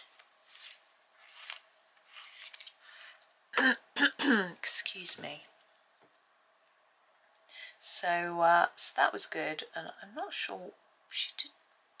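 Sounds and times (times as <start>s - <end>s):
pencil scraping strokes: 0.4s - 2.6s.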